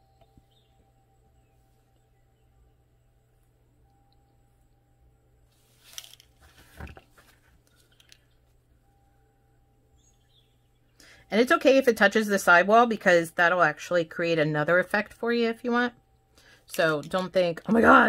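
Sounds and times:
low room hum: 0:00.0 - 0:18.0
gloved hands handling plastic bottle: 0:05.6 - 0:08.2.

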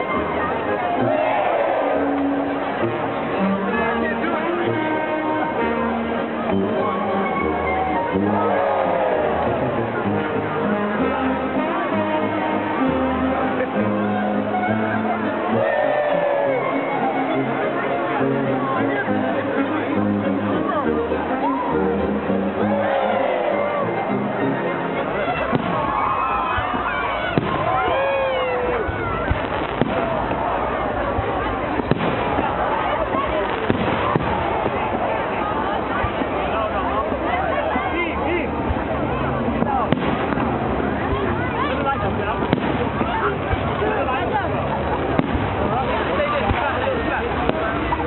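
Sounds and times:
crowd chatter: 0:00.0 - 0:48.0
fireworks bursting: 0:25.5 - 0:26.0, 0:28.9 - 0:35.3, 0:39.6 - 0:43.9, 0:44.9 - 0:48.0.

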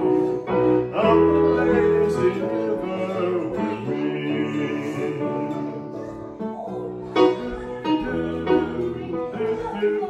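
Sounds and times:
electronic keyboard chords: 0:00.0 - 0:10.0.

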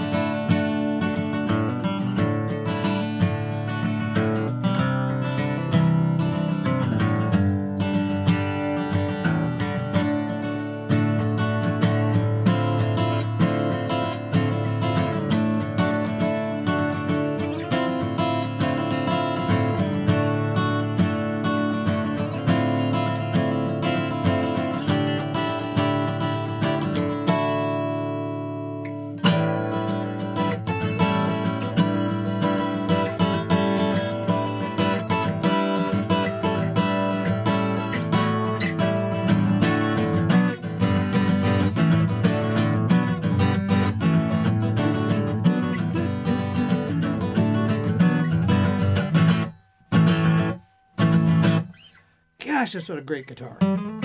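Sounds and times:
acoustic guitar strumming chords: 0:00.0 - 0:54.0.

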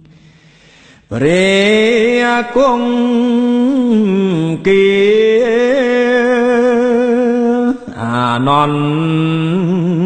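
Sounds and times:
man chanting: 0:01.1 - 0:10.0.

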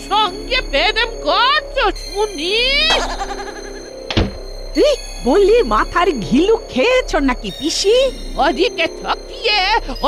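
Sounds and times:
background music: 0:00.0 - 0:10.0
low thud: 0:04.1 - 0:04.6.

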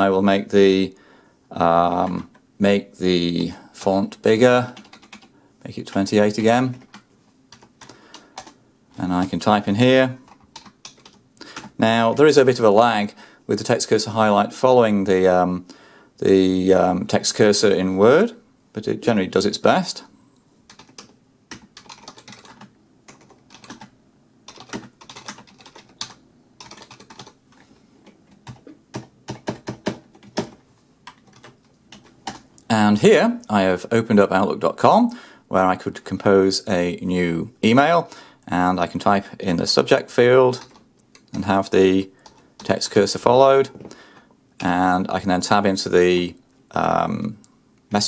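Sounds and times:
computer keyboard keystrokes: 0:04.8 - 0:05.3, 0:06.7 - 0:08.6, 0:10.3 - 0:11.8, 0:20.7 - 0:23.9, 0:24.5 - 0:27.6, 0:28.4 - 0:32.6, 0:40.6 - 0:41.4.

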